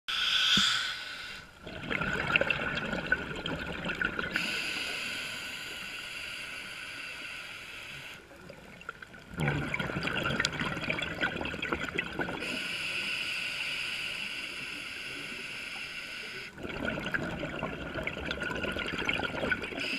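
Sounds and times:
hissing regulator inhalation: 0.1s - 1.6s, 4.3s - 8.2s, 12.4s - 16.6s
bubbling exhaled air underwater: 1.6s - 5.0s, 8.3s - 12.7s, 16.5s - 19.9s.

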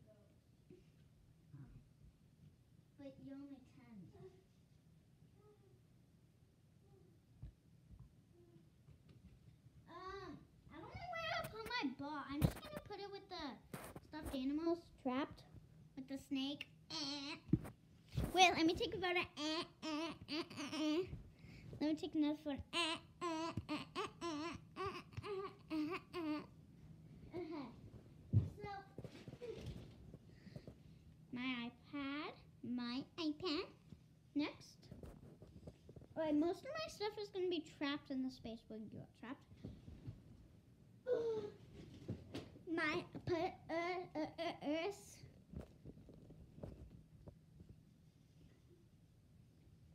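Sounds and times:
girl babbling: 19.3s - 21.2s, 22.7s - 26.5s, 41.1s - 41.6s.

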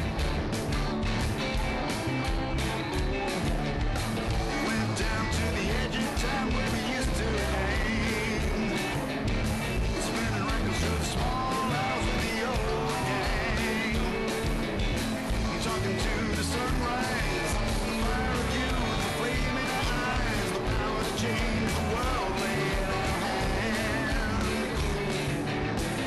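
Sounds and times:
drums: 0.0s - 26.0s
guitar: 0.0s - 26.0s
person singing: 1.4s - 26.0s.

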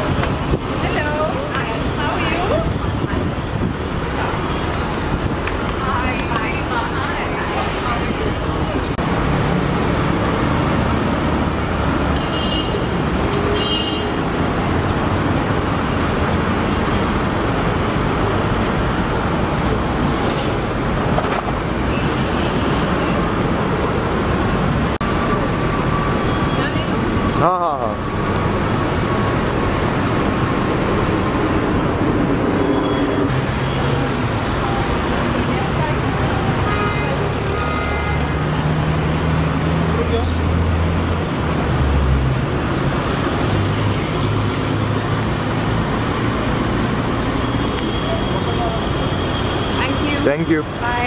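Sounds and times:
vehicle engines passing: 0.0s - 51.0s.

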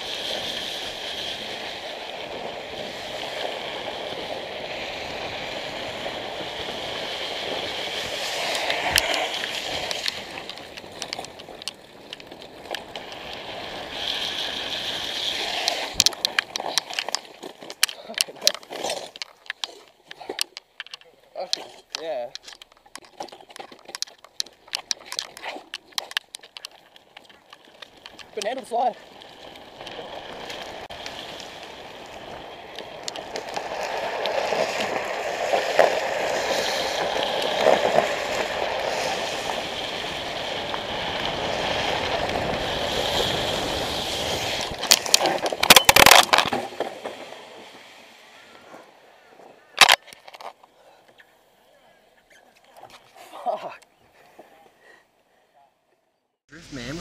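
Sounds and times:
wheels rolling on wet asphalt: 0.0s - 55.0s, 56.5s - 57.0s.

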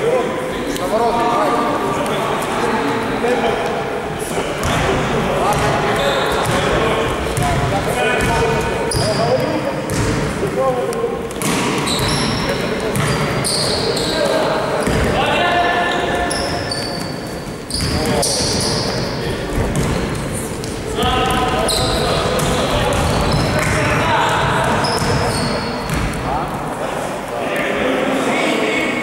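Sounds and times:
sneakers squeaking: 4.6s - 10.4s, 11.2s - 26.5s
basketball bouncing on gym floor: 7.3s - 10.3s, 11.3s - 13.4s, 19.5s - 20.2s, 21.1s - 26.3s.

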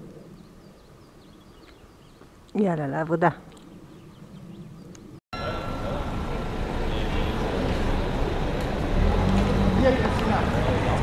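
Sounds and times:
passing street traffic: 5.4s - 11.0s.

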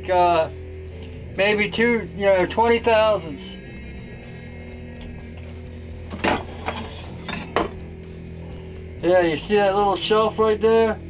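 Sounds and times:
steady low hum: 0.0s - 10.0s
metallic clanks and scrapes: 5.3s - 8.1s.

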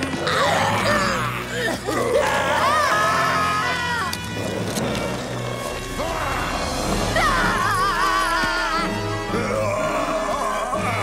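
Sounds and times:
cartoon chase music: 0.0s - 11.0s
frightened yelling voices: 5.9s - 11.0s.

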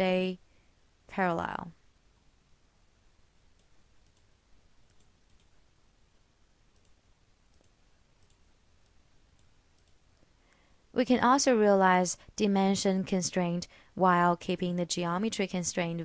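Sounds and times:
faint room hiss: 0.0s - 16.0s
computer mouse clicks: 3.5s - 5.6s, 6.7s - 10.3s.

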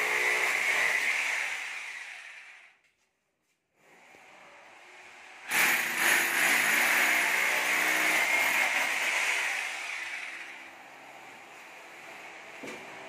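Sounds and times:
electric power drill running: 0.0s - 2.8s, 5.4s - 10.8s.

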